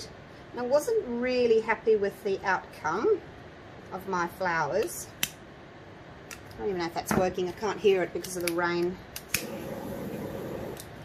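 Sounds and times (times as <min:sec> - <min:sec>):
rain hissing: 0:09.4 - 0:11.0.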